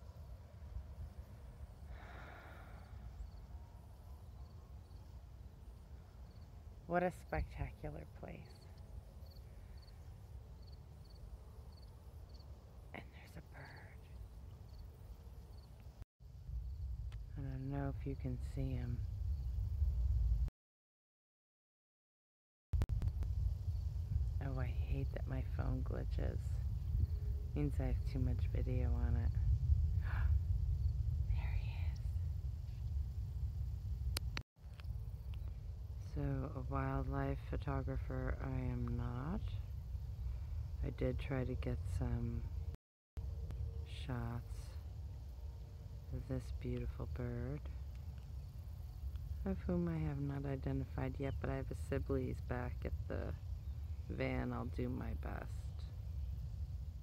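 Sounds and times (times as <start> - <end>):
faint breath: 1.8 - 3.8, 40.2 - 40.8
wind rumble on microphone: 15.5 - 20.5, 22.8 - 57.0.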